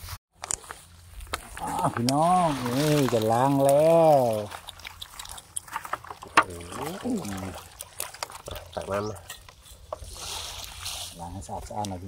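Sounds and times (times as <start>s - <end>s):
water dribbling through basket: 1.4s - 12.0s.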